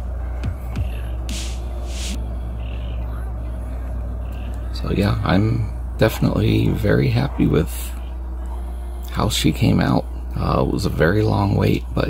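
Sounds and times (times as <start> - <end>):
steady low hum: 0.0 - 12.0
short hissing bursts: 1.3 - 2.2.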